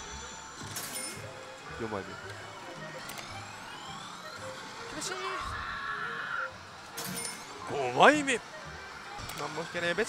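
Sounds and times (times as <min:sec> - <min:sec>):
pachinko hall din: 0:00.0 - 0:10.0.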